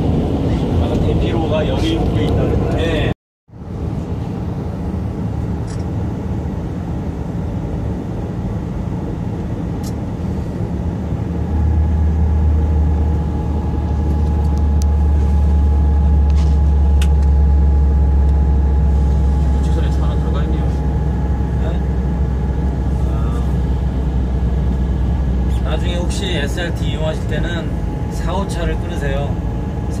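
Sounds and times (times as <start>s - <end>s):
deep steady hum: 0.0s - 30.0s
faint steady whine: 0.4s - 30.0s.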